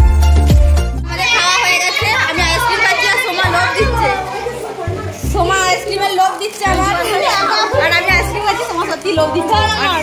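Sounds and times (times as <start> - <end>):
background music with bass line: 0.0 - 1.2
people talking: 1.1 - 10.0.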